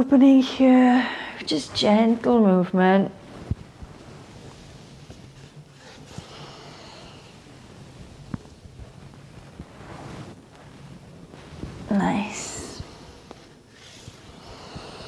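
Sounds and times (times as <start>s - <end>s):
faint low hum: 0.0s - 15.0s
soft breath: 0.9s - 1.5s, 3.3s - 15.0s.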